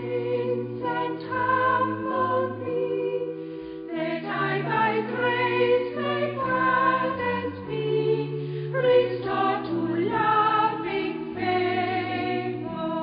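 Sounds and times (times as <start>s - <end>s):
choir singing sustained chords: 0.0s - 13.0s.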